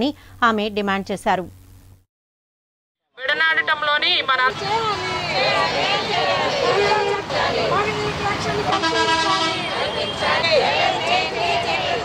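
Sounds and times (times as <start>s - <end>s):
vehicle horn: 7.8s - 11.7s.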